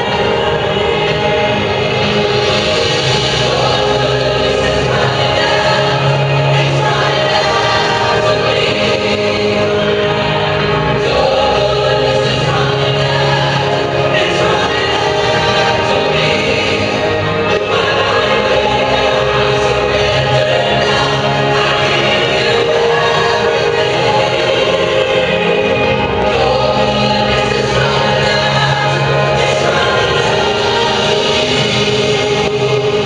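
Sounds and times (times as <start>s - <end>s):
choir singing gospel music: 0.0s - 33.0s.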